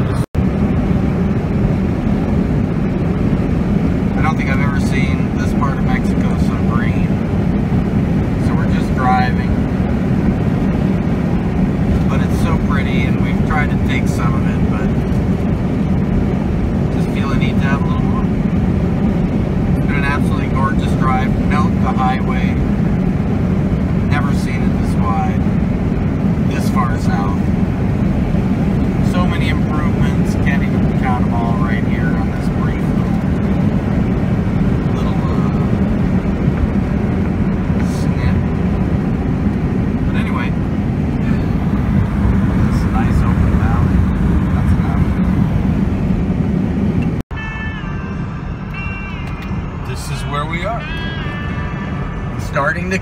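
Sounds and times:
car interior road and engine rumble: 0.0 - 53.0.

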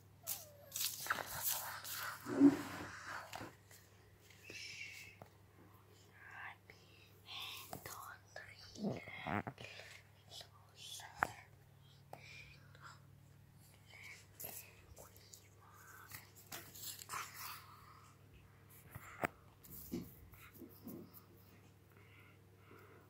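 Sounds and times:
person whispering: 6.0 - 13.1, 13.7 - 18.2.

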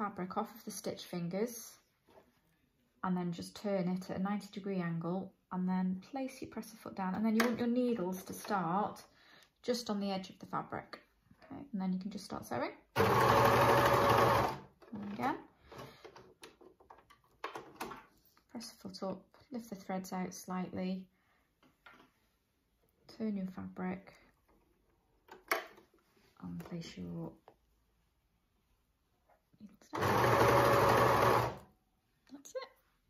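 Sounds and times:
overlocker sewing machine running: 13.0 - 14.6, 30.0 - 31.6
person voice: 14.9 - 15.5, 26.4 - 27.4, 32.2 - 32.8.

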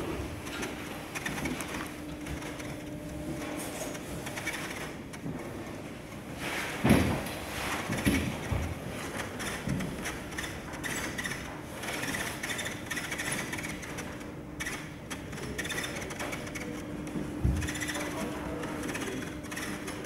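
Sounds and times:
machinery humming and rattling: 0.0 - 20.0.

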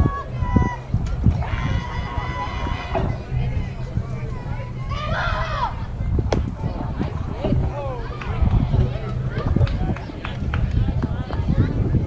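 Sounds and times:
low steady rumble: 0.0 - 12.0
people shouting and cheering: 0.0 - 12.0.

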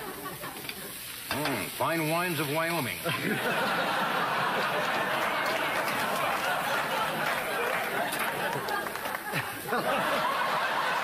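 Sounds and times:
studio audience laughing: 0.0 - 1.0, 3.0 - 11.0
bacon and onions sizzling in a pan: 0.0 - 3.4.

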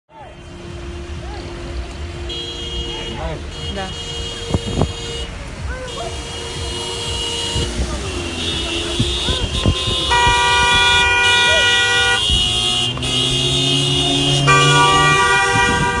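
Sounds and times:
low traffic rumble: 0.1 - 16.0
vehicle horns honking: 0.1 - 16.0.

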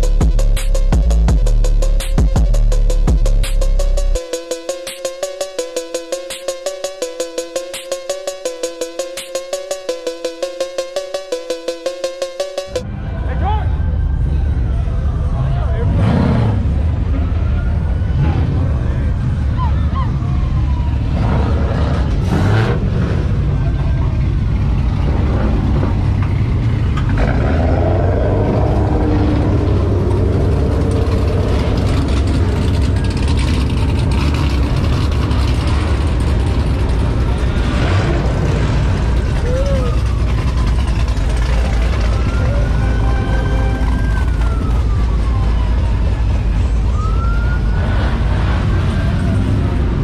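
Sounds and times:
car and truck engines rumbling: 0.0 - 50.0
police siren: 1.7 - 22.0, 26.4 - 50.0
people's voices: 39.2 - 40.2.

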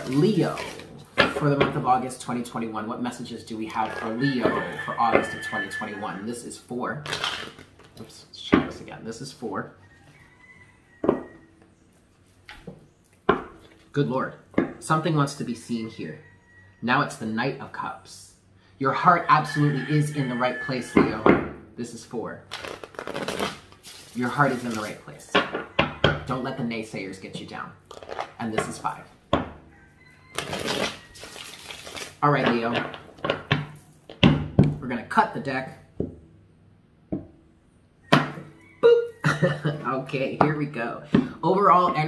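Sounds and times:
cards being shuffled: 0.0 - 1.4, 22.5 - 25.0, 27.9 - 28.8, 30.4 - 33.5.

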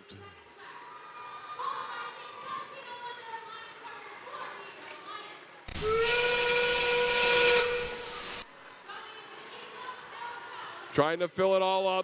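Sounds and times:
train whistle over loudspeakers: 5.8 - 8.3.

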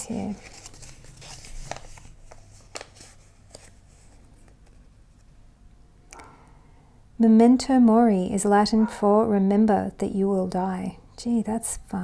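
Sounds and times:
paper crackling: 0.0 - 4.9.

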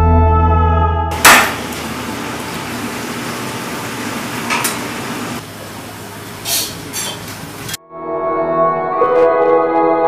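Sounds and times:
kitchen noise: 1.1 - 7.8.

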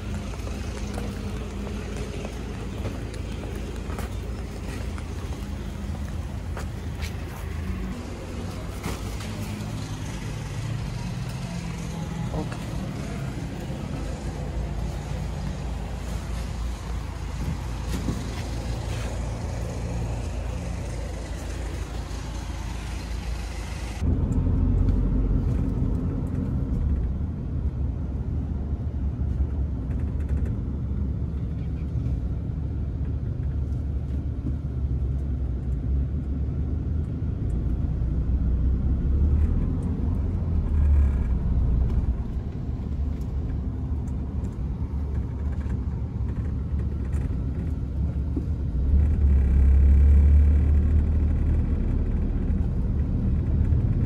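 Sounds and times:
car engine hum: 0.0 - 54.0
deep road noise rumble: 0.0 - 54.0.

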